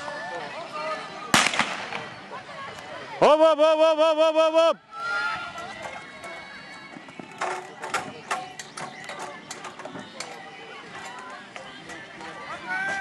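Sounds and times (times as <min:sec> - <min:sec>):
distant shouting voices: 0:02.1 - 0:06.7, 0:12.3 - 0:13.0.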